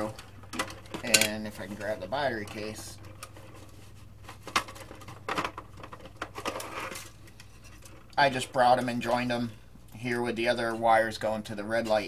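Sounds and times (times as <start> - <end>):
scraping rustles: 0.0 - 9.2.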